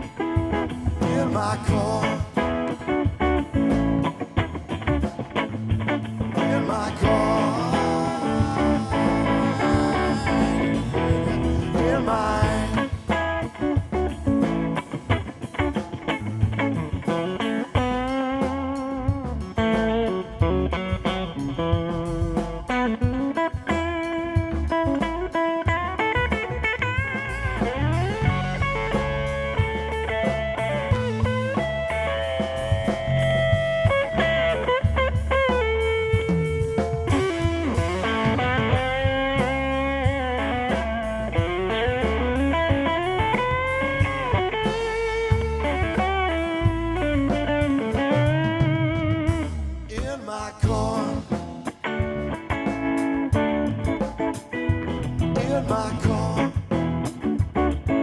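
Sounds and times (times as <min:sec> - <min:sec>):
bass guitar: 0:00.0 - 0:58.0
drums: 0:00.0 - 0:58.0
electric guitar lead bending notes: 0:00.0 - 0:58.0.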